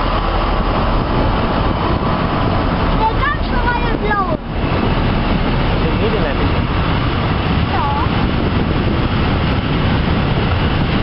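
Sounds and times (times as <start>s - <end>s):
freight train rolling past: 0.0s - 11.0s.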